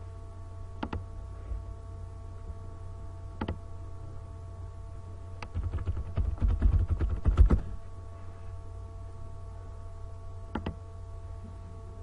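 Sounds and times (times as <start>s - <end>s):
typing on computer keyboard: 5.4s - 7.6s.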